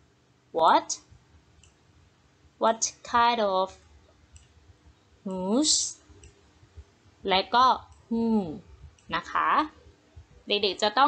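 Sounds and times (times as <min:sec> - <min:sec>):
faint clicks: 0:01.6 - 0:01.8, 0:04.0 - 0:05.0, 0:06.1 - 0:06.9.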